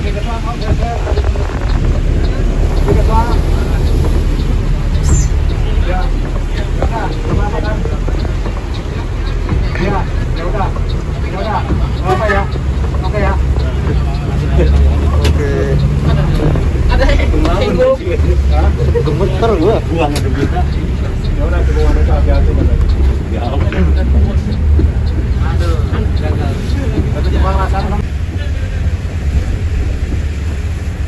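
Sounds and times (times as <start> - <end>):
indistinct talk: 0.0 - 30.5
bus diesel engine rumble: 0.0 - 31.0.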